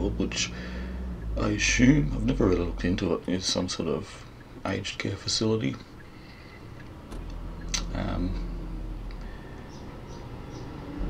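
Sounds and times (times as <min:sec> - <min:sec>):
car engine and road rumble: 0:00.0 - 0:11.0.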